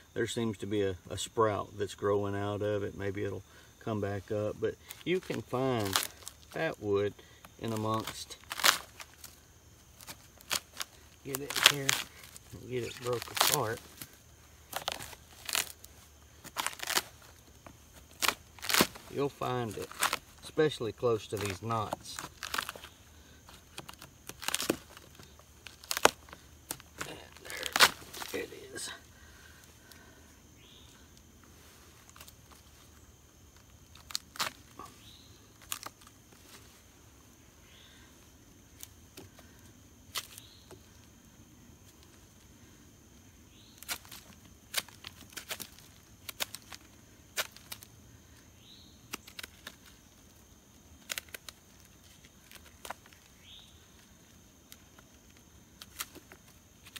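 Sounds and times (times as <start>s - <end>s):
rotten wood cracking and splintering: 4.3s - 6.7s, 7.3s - 30.2s, 33.9s - 36.2s, 43.8s - 48.4s, 49.1s - 54.1s.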